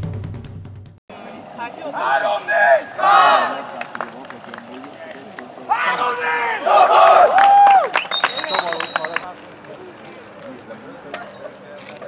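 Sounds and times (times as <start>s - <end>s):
young men shouting a cheer: 1.4s - 4.1s, 4.9s - 8.0s.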